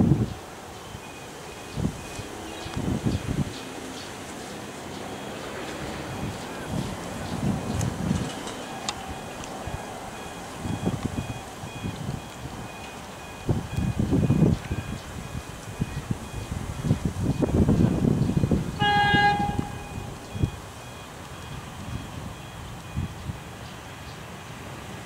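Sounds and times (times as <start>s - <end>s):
wind buffeting microphone: 0.0s - 24.2s
train horn toot: 18.7s - 20.2s.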